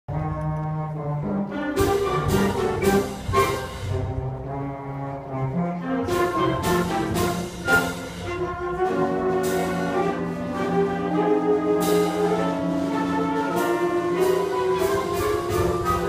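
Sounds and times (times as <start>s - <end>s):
concert band playing: 0.1s - 16.0s.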